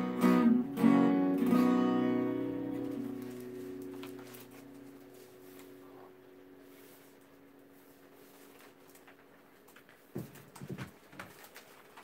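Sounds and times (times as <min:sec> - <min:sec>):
paper shuffling: 0:02.7 - 0:12.0.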